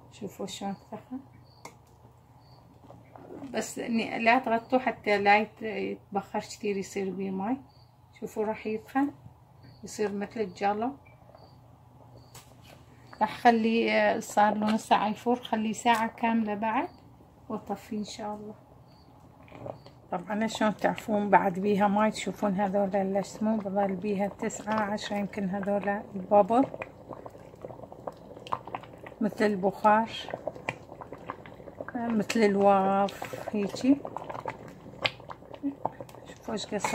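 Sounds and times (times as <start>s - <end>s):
low steady hum: 0.0s - 36.9s
thick sauce bubbling: 0.5s - 5.1s, 16.9s - 36.9s.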